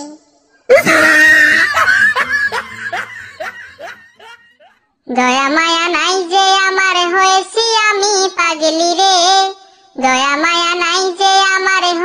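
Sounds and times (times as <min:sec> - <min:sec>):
person laughing loudly: 0:00.7 - 0:04.7.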